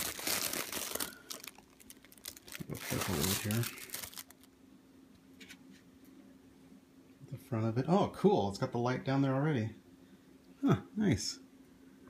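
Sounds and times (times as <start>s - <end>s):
packing paper crinkling: 0.0s - 4.5s.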